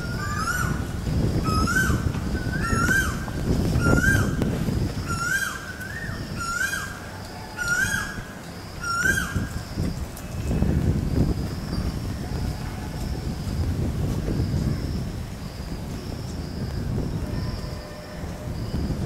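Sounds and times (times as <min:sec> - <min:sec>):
bird calling: 0:00.0 - 0:04.4, 0:05.0 - 0:10.6.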